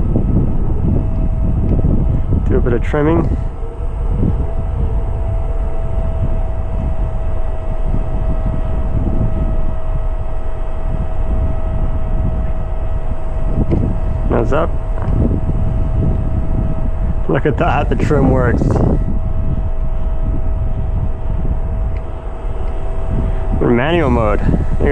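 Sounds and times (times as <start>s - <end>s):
faint high whine: 0.0s - 24.9s
wind buffeting microphone: 0.0s - 24.9s.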